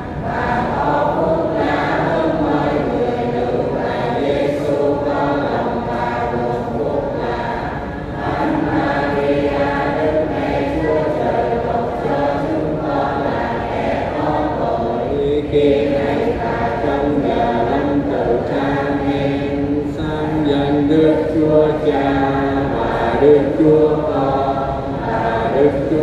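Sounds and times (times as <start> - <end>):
voices chanting prayer in unison: 0.0 - 26.0.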